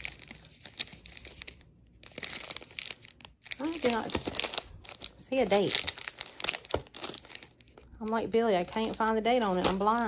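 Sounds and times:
plastic wrappers crinkling: 0.0s - 10.0s.

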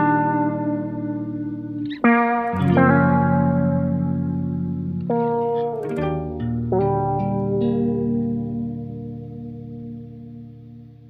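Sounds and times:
guitar chord ringing: 0.0s - 11.0s
plucked guitar notes: 0.0s - 11.0s.

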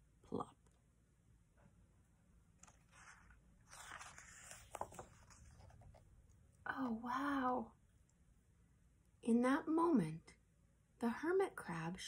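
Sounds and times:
paper page turning: 2.6s - 6.0s.

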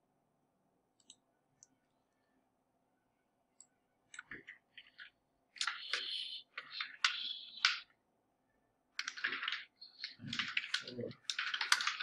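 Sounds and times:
typing on computer keyboard: 9.0s - 12.0s.

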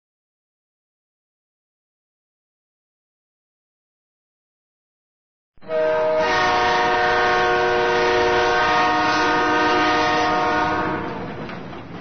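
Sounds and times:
train horn chord: 5.6s - 11.3s.

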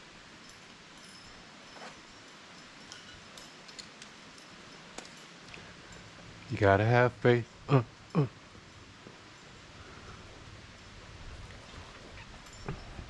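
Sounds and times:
faint outdoor hiss: 0.0s - 13.0s
climbing gear clicking and clinking: 0.4s - 13.0s.

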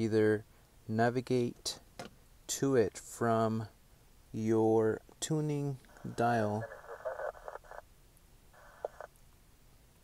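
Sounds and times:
muffled radio burst with tone: 5.9s - 7.8s, 8.5s - 9.1s.

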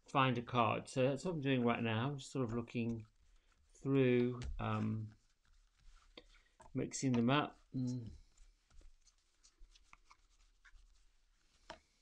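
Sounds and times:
cards shuffled by hand: 2.4s - 12.0s.

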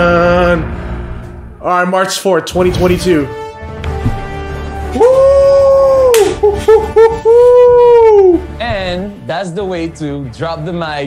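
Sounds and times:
low musical rumble: 0.0s - 3.6s.

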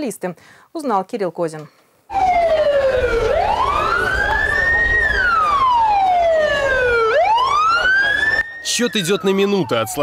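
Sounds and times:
ambulance siren wailing: 2.1s - 10.0s.

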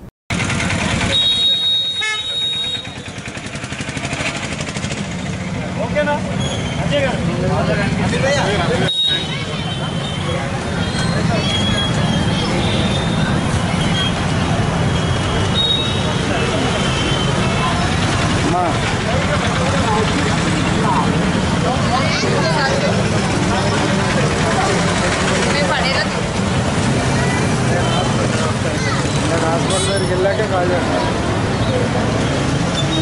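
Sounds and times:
street traffic noise: 0.0s - 33.0s
crowd talking: 0.7s - 33.0s.

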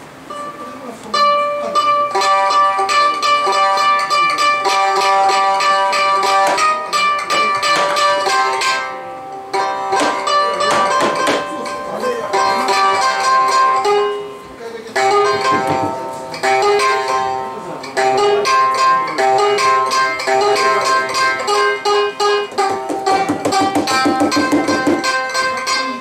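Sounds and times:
plucked string instrument melody: 0.0s - 26.0s.

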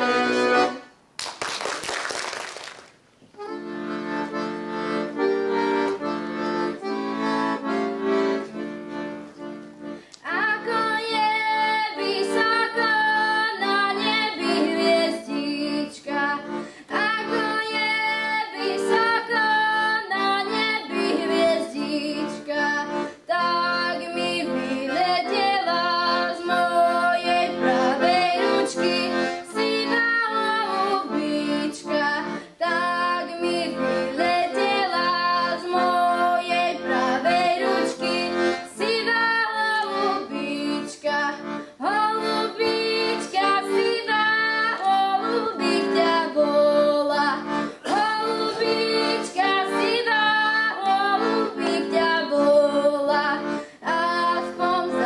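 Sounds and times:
accordion chords: 0.0s - 1.4s, 2.4s - 55.0s
girl singing folk song: 10.1s - 55.0s.

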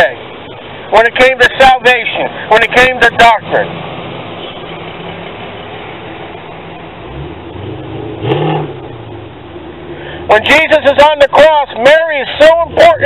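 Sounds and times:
car engine speeding up: 6.6s - 10.7s, 12.4s - 13.0s.

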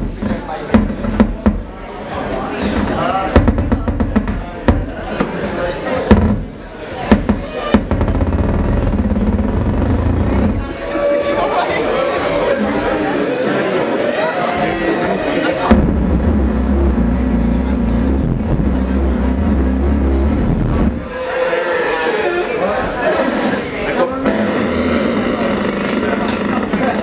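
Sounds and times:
deep low synth drone: 7.8s - 11.4s, 15.7s - 21.3s.

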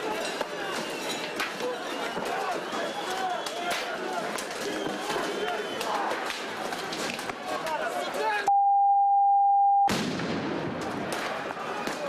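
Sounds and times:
crowd shouting: 1.6s - 8.5s, 10.9s - 12.0s
censor bleep tone: 8.5s - 9.9s.

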